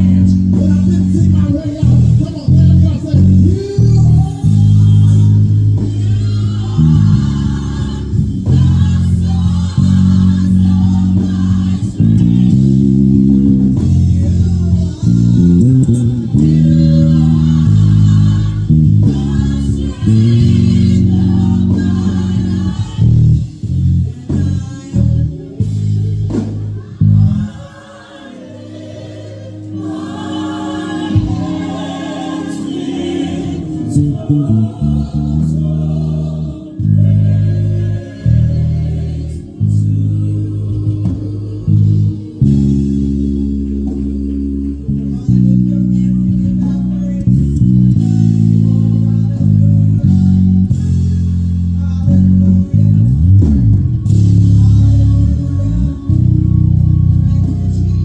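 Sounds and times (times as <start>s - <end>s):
electric bass playing: 0.0s - 58.0s
gospel singing: 0.0s - 58.0s.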